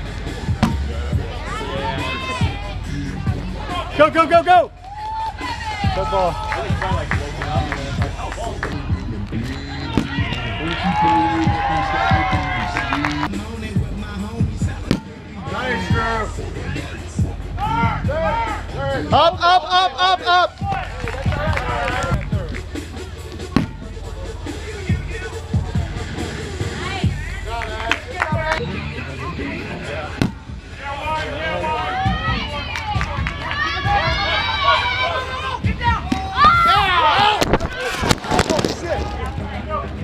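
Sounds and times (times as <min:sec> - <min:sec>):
background music: 0:00.0 - 0:37.4
voices shouting: 0:00.2 - 0:08.6, 0:09.4 - 0:13.3, 0:14.6 - 0:40.0
rubber ball thumping ground: 0:00.5 - 0:01.2, 0:09.9 - 0:10.5, 0:14.8 - 0:15.3, 0:23.3 - 0:24.0, 0:30.1 - 0:30.6, 0:37.4 - 0:39.2
rubber ball smack: 0:00.6 - 0:00.9, 0:10.0 - 0:10.4, 0:14.8 - 0:15.2, 0:23.4 - 0:23.8, 0:30.2 - 0:30.5.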